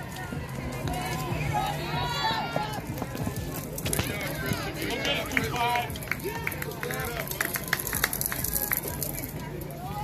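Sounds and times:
spectators cheering and shouting: 0:00.0 - 0:09.0, 0:09.6 - 0:10.0
hand claps: 0:05.3 - 0:08.8.

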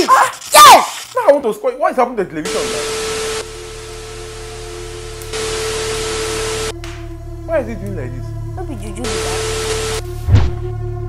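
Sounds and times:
television static hiss: 0:02.5 - 0:06.7, 0:09.1 - 0:10.0
steady humming tone: 0:02.5 - 0:07.4, 0:09.0 - 0:10.1.

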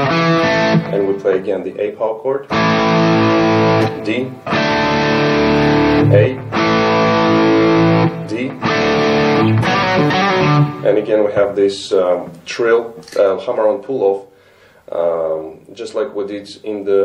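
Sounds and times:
distorted electric guitar chords: 0:00.0 - 0:01.5, 0:02.5 - 0:11.2.

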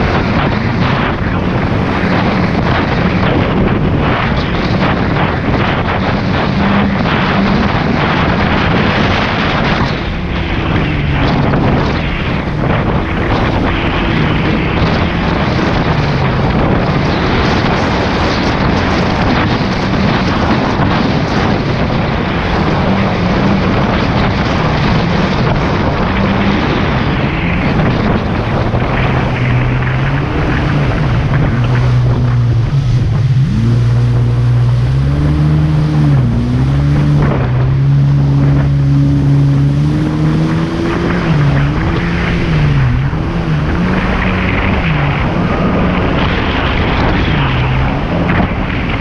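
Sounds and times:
jet ski engine: 0:00.0 - 0:49.0
wind buffeting microphone: 0:00.0 - 0:49.0.

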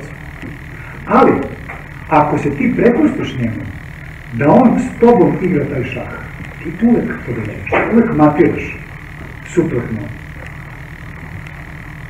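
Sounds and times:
high-pitched drone: 0:00.0 - 0:12.0
low hum: 0:00.0 - 0:12.0.

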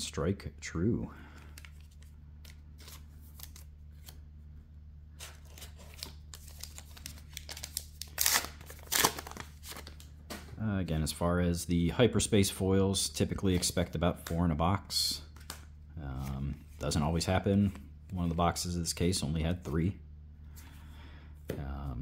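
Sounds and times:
steady low hum: 0:00.0 - 0:22.0
foil wrapper crinkling and tearing: 0:05.4 - 0:10.0.

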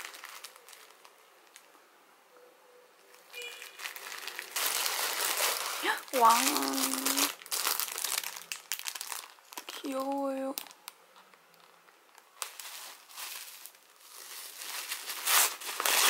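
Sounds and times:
paper wrapping crinkling: 0:00.0 - 0:01.7, 0:03.1 - 0:16.0.

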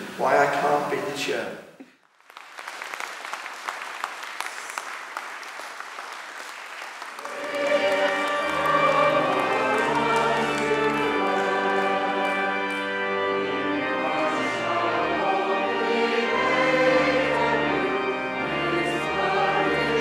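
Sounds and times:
audience applauding: 0:02.0 - 0:12.9
organ and choir music: 0:07.0 - 0:20.0.

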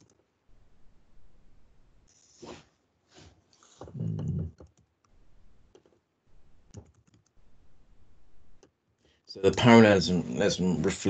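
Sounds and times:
faint keyboard keystrokes: 0:06.7 - 0:07.4.

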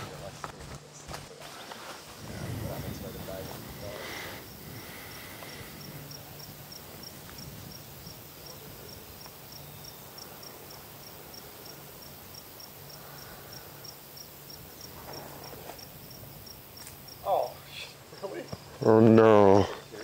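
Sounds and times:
faint outdoor background noise: 0:00.0 - 0:20.0
insect chirping: 0:02.0 - 0:20.0.

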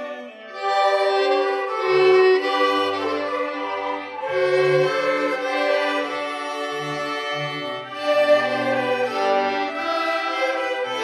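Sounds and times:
string ensemble playing: 0:00.0 - 0:11.0.

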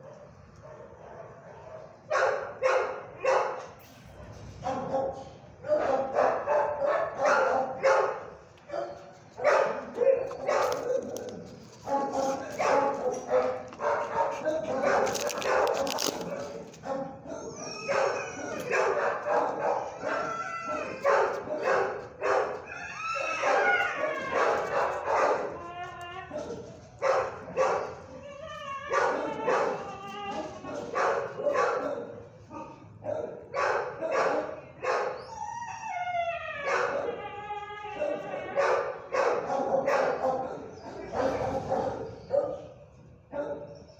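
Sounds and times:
dogs barking: 0:00.0 - 0:35.3, 0:36.6 - 0:37.3, 0:37.9 - 0:43.9
high-pitched yips and howls: 0:17.4 - 0:31.6.

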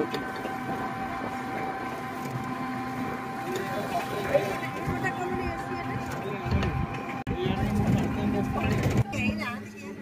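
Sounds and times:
steady whine of held tones: 0:00.0 - 0:08.7
low road noise: 0:00.0 - 0:10.0.

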